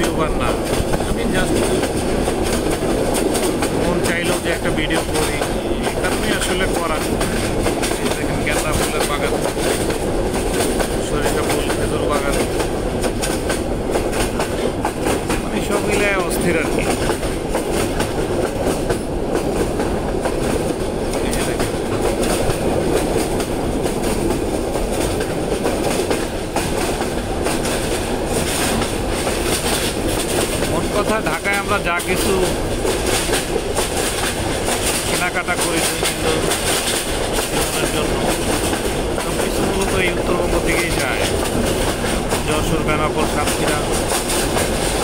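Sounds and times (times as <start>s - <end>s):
train rumbling: 0.0s - 45.0s.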